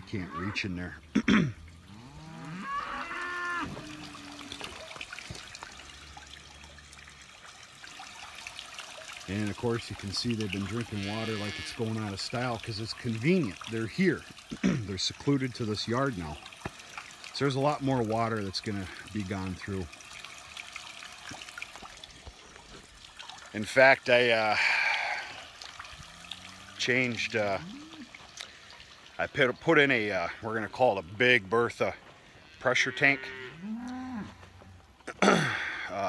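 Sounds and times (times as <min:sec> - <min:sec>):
water trickling and splashing: 0:00.0 - 0:36.0
cow mooing: 0:01.8 - 0:04.9, 0:10.8 - 0:11.8, 0:27.6 - 0:28.1, 0:32.8 - 0:34.4.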